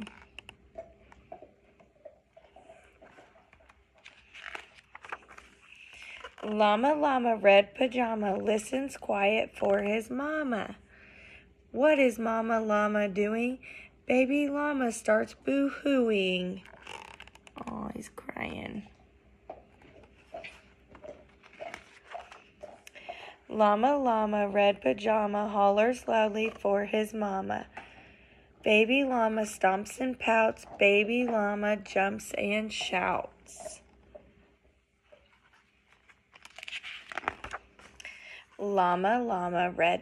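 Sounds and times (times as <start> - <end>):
faint steady hum: 0.0 - 40.0
paper rustling: 3.0 - 6.7, 19.8 - 22.8, 35.2 - 38.4
page turning: 3.1 - 6.8, 20.0 - 22.8, 35.4 - 38.0.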